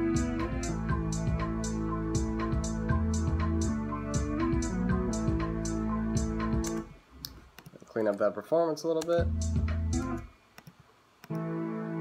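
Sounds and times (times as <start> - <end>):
electronic beat with synth and bass: 0.0 - 7.0, 9.2 - 10.3.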